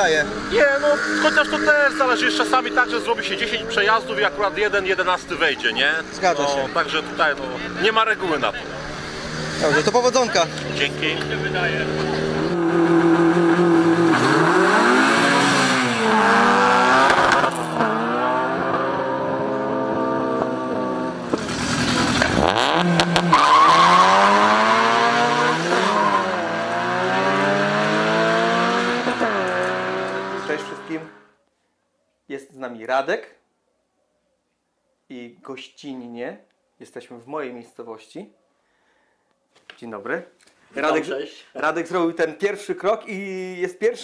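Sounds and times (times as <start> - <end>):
race car engines revving: 0.0 - 31.3.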